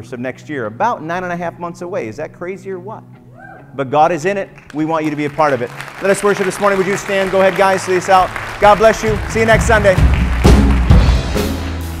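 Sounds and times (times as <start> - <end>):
worship band playing: 4.0 - 12.0
drum kit hits: 8.7 - 12.0.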